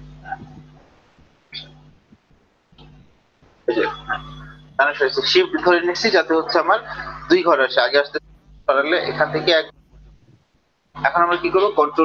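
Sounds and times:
low hum: 0.0 - 12.0
man speaking: 4.8 - 9.7, 11.0 - 12.0.

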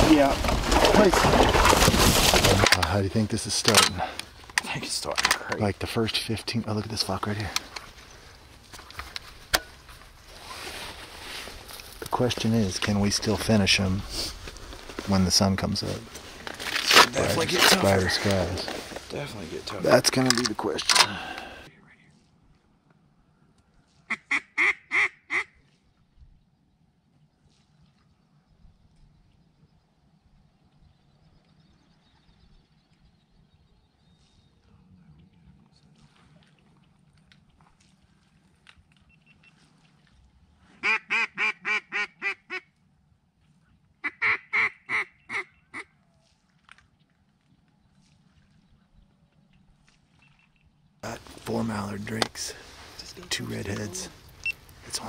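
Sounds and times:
duck call quacks: 24.1 - 25.6, 40.8 - 42.7, 44.0 - 45.9.

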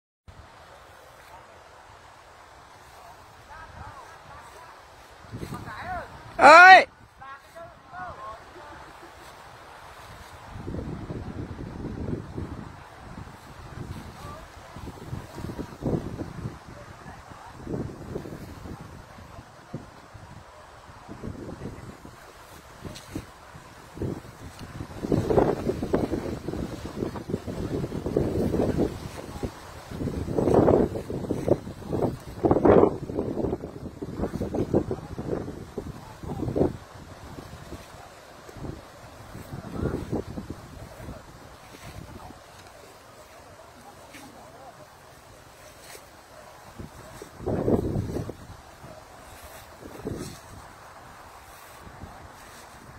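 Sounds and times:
wind buffeting microphone: 2.6 - 52.9.

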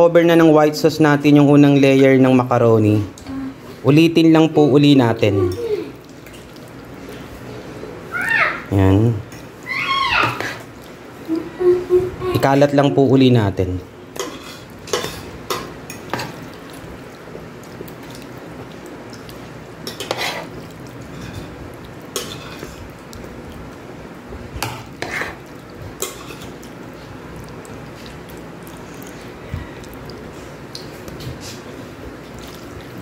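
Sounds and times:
metal spoon scraping a dish: 14.2 - 15.3, 19.8 - 20.5, 22.1 - 22.8, 24.6 - 25.4, 26.0 - 26.5.

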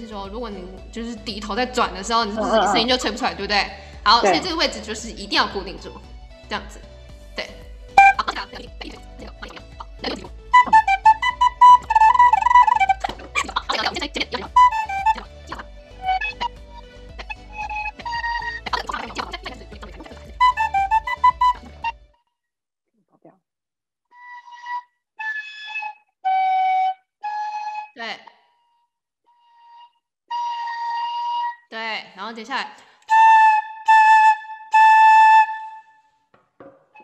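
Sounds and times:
wooden flute playing notes: 8.0 - 8.4, 10.0 - 16.6, 17.3 - 22.0, 24.1 - 31.7, 33.1 - 36.2.

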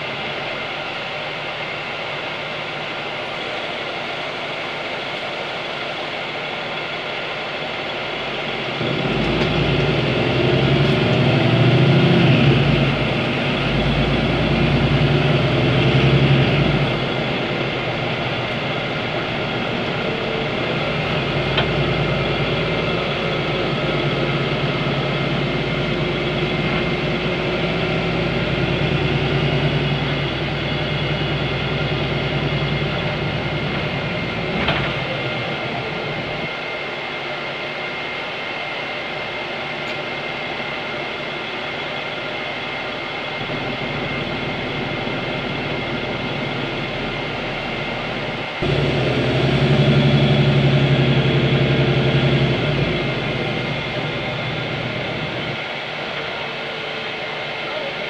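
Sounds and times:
bus diesel engine: 0.0 - 58.0.

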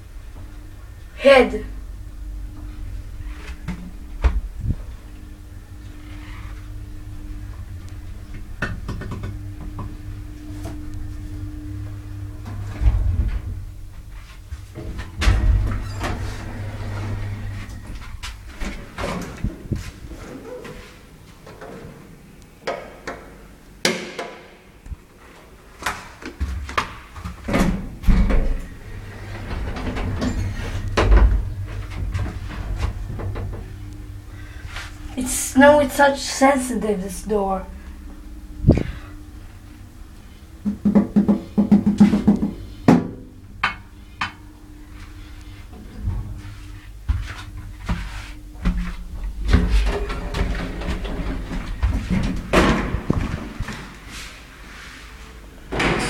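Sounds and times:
elevator machinery humming: 0.0 - 56.0.

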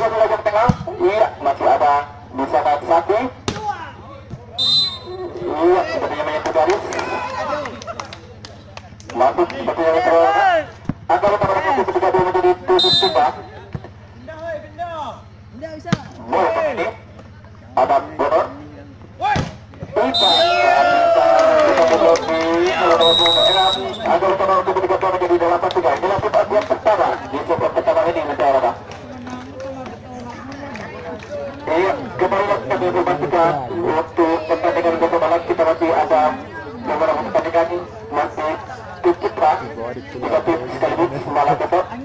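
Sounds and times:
ball strikes: 0.6 - 1.0, 3.4 - 4.5, 15.9 - 16.2, 19.2 - 20.0
referee's whistle: 4.6 - 5.4, 12.7 - 13.6, 20.0 - 20.8, 22.8 - 24.2
men shouting and calling: 9.2 - 15.2, 19.2 - 28.8.

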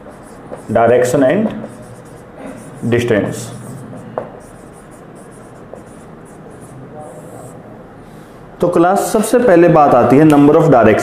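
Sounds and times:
scratchy writing on a board: 0.0 - 7.6
low room hum: 0.0 - 11.0.

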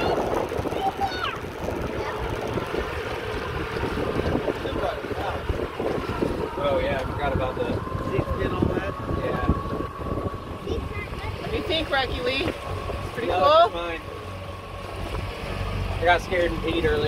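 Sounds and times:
boat motor running: 0.0 - 17.0
water rushing past hull: 0.0 - 17.0
wind buffeting microphone: 0.0 - 17.0.

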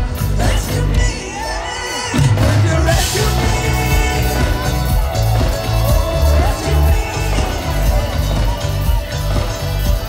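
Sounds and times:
live rock band playing: 0.0 - 10.0
pulsing bass guitar line: 2.2 - 10.0.

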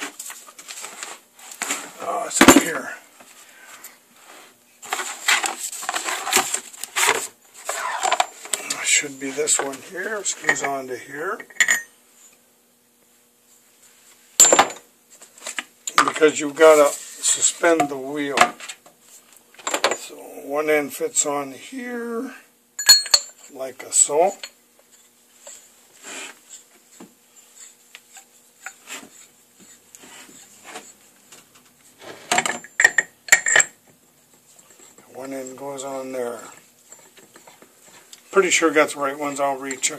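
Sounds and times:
metallic clack with ring: 11.5 - 11.9, 22.8 - 23.4
metal clinks and clanks: 22.8 - 23.5.

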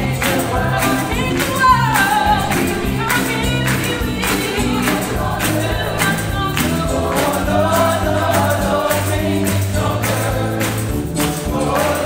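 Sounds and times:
gospel choir singing: 0.0 - 12.0
instrumental accompaniment with beat: 0.0 - 12.0.

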